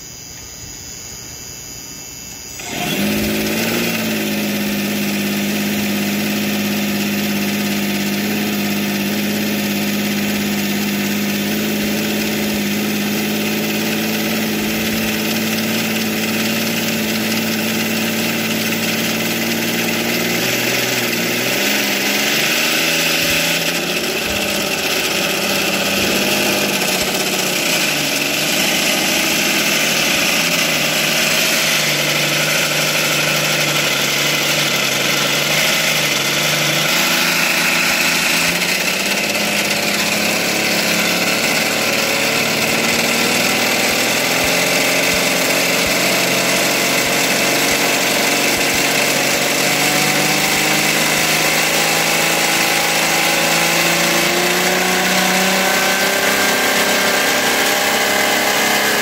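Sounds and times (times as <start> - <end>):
model aircraft engine idling: 0.0 - 59.0.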